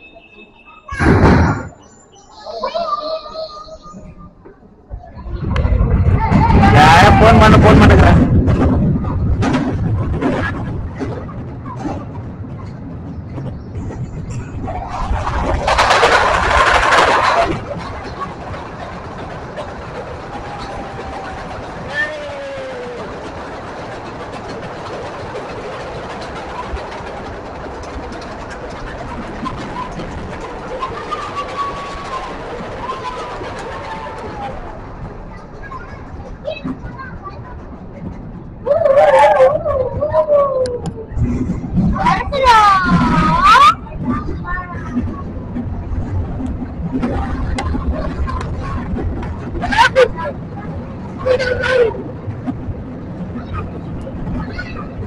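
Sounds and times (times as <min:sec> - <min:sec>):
ride car rolling on track: 0:00.0 - 0:55.0
faint voices calling out: 0:17.2 - 0:46.1.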